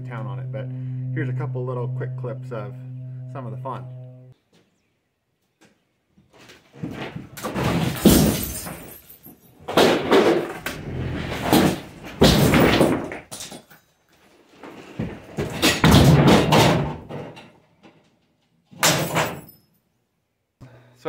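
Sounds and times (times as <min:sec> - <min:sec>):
wooden walls crashing onto concrete: 0:06.7 - 0:13.8, 0:15.0 - 0:17.6.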